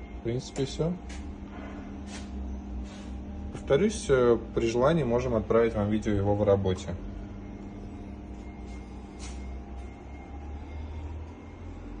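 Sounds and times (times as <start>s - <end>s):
oven mechanical hum: 0.0s - 12.0s
faint steady tones: 3.7s - 12.0s.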